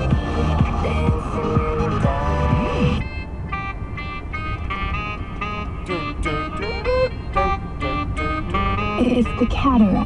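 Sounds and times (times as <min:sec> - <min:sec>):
electronic dance music: 0:00.0 - 0:03.0
organ-like keyboard chords: 0:00.0 - 0:10.0.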